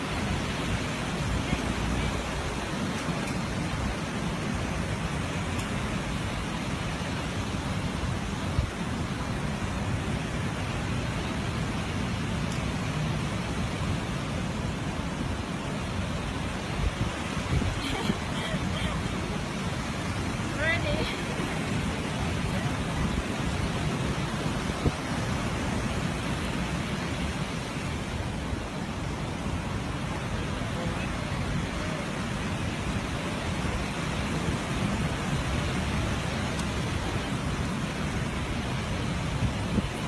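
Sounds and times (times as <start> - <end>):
surf: 0.0 - 40.0
wind: 0.0 - 40.0.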